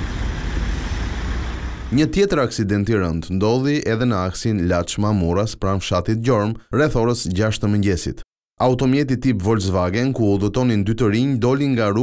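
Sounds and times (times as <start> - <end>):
road traffic rumble: 0.0 - 2.0.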